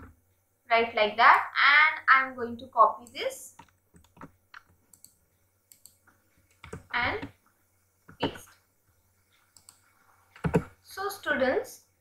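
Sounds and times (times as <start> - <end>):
keyboard and mouse clicks: 3.0 - 7.4, 9.4 - 10.7.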